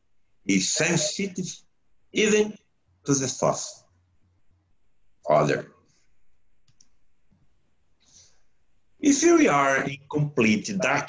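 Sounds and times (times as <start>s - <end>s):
faint clicks: 6.6s - 7.4s.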